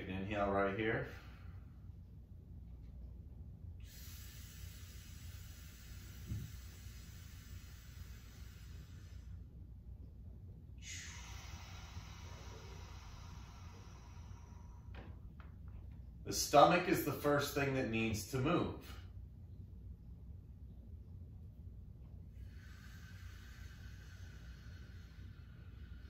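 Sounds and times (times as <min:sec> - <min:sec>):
person breathing slowly: 0:01.0 - 0:02.1, 0:03.8 - 0:09.6, 0:10.8 - 0:15.6, 0:22.3 - 0:26.0.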